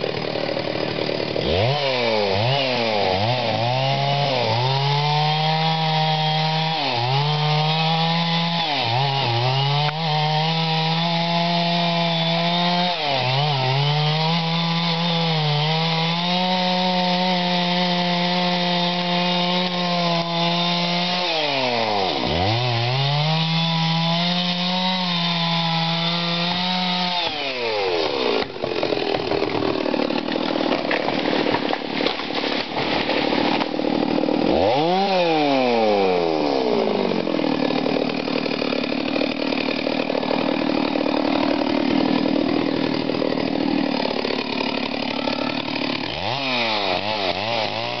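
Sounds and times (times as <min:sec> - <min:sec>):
chainsaw cutting and revving: 0:00.0 - 0:48.0
tree crashing through branches: 0:28.2 - 0:36.3.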